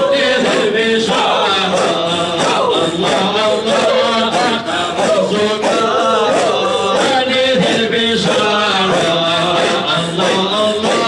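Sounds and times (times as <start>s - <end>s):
men chanting together: 0.0s - 11.0s.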